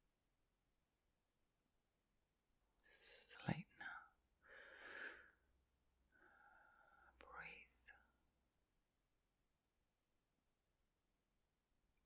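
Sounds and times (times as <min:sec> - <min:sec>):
person whispering: 0:02.8 - 0:04.2, 0:07.1 - 0:08.2.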